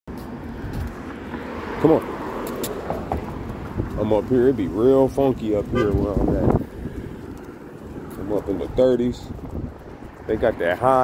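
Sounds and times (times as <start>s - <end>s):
street background rumble: 0.1s - 11.0s
man speaking: 4.0s - 6.6s, 8.1s - 9.3s, 10.3s - 11.0s.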